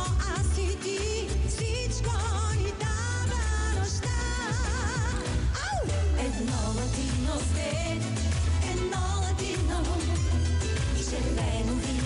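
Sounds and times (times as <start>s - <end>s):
pop band playing: 0.0s - 12.0s
woman singing lead: 0.0s - 12.0s.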